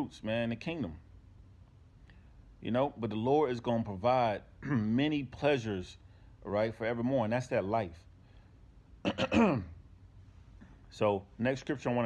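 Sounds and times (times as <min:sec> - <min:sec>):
man clearing throat: 0:04.6 - 0:05.0, 0:09.0 - 0:09.8.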